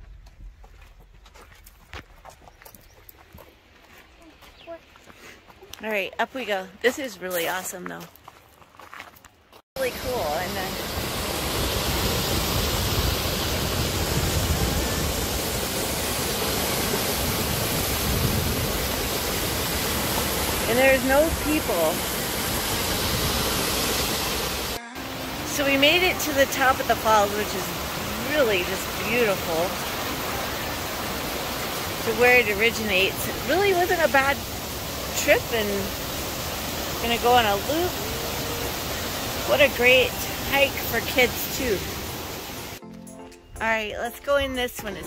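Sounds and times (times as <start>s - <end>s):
footsteps on gravel: 0.0s - 9.6s
waterfall rushing: 9.8s - 42.8s.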